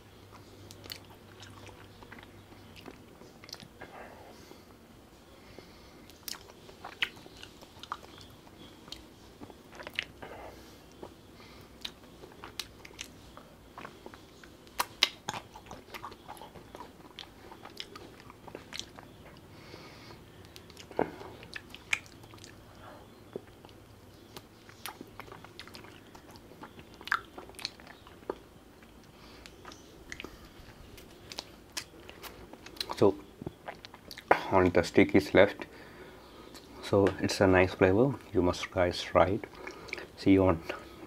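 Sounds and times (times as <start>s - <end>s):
biting and chewing ice cream: 0.1s - 3.9s, 6.1s - 34.9s.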